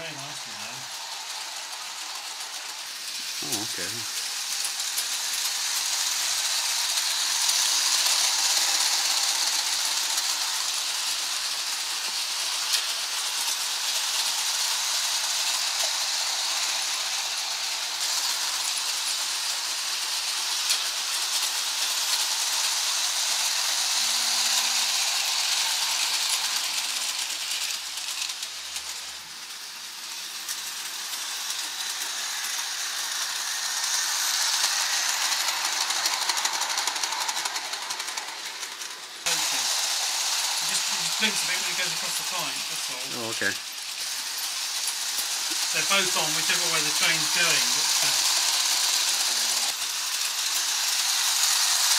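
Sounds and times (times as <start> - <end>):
model train wheels rattling on rail: 0.0 - 51.9.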